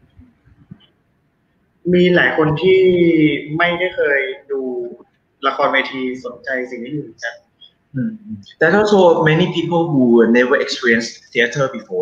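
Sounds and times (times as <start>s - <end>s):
man talking: 1.8s - 12.0s.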